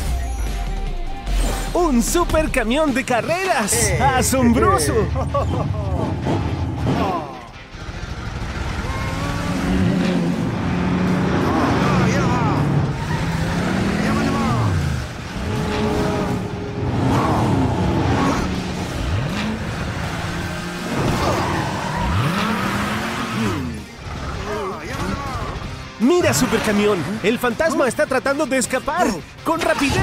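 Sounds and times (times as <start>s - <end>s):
cartoon race car engine revving: 4.2s - 27.6s.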